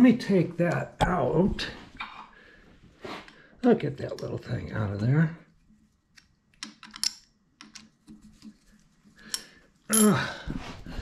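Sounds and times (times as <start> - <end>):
small metal parts clicking: 6.2 - 7.9.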